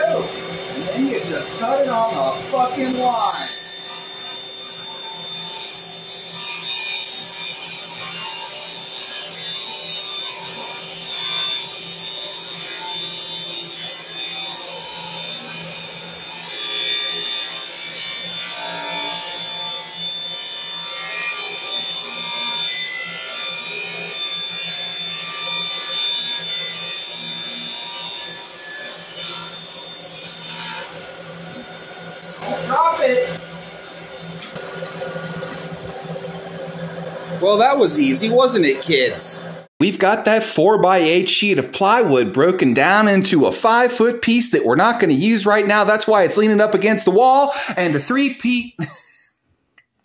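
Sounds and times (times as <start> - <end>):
shop vacuum running: 0.0 - 20.8, 28.3 - 40.2
table saw cutting wood: 0.0 - 49.0.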